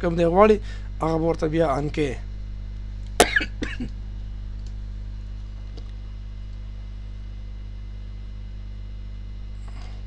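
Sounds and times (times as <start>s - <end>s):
steady low hum: 0.0s - 10.0s
man coughing: 3.2s - 3.9s.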